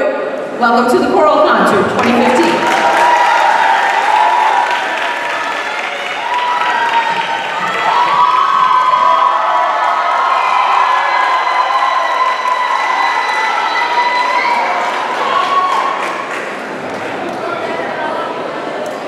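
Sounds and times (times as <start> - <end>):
audience applauding: 1.9 - 17.6
shrill cheers: 2.2 - 16.2.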